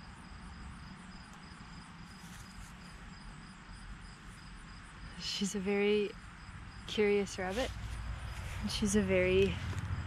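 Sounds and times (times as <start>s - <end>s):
insects chirping: 0.0s - 10.0s.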